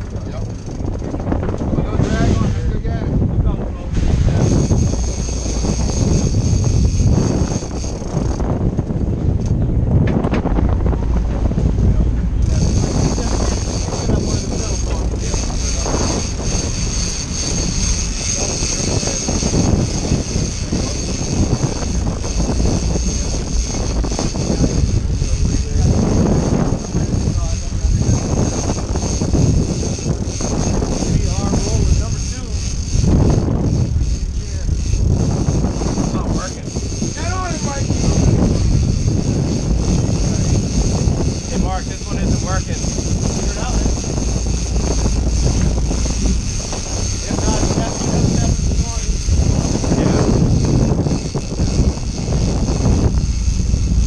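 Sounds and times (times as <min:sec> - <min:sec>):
boat engines running: 0:00.0 - 0:54.0
wind rumbling on microphone: 0:00.0 - 0:54.0.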